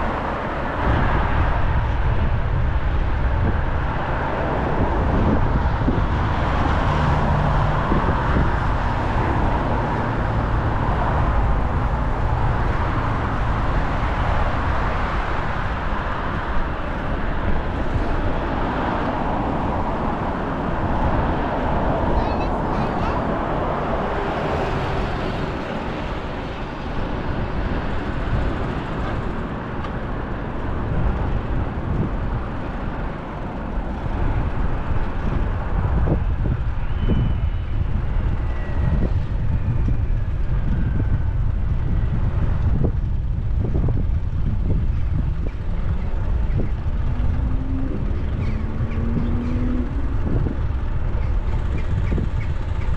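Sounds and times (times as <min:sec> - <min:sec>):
car traffic: 0:00.0 - 0:52.9
wind rumbling on microphone: 0:00.0 - 0:52.9.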